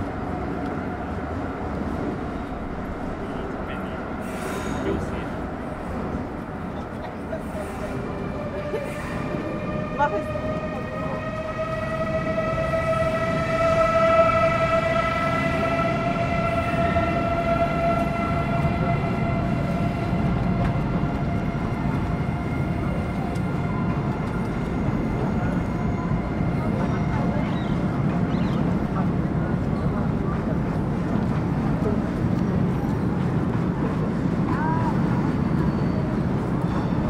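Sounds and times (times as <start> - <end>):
train crossing a steel bridge: 0.0 - 37.0.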